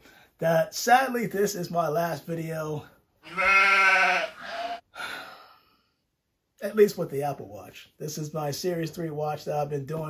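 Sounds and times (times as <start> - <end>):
comic goat bleating: 3.2 - 4.8.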